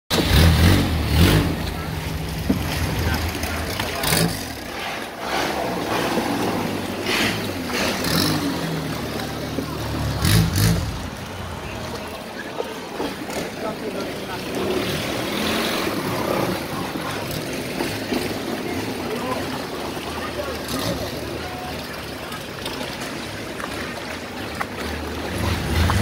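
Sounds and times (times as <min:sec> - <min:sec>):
motorboat engine running: 0:00.1 - 0:26.0
rushing water: 0:00.1 - 0:26.0.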